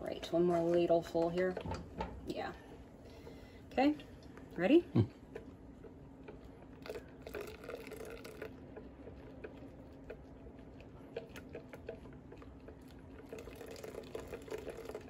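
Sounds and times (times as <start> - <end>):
faint steady hum: 0.0 - 15.0
whisk stirring in a bowl: 5.3 - 15.0
liquid trickling from a ladle: 6.3 - 15.0.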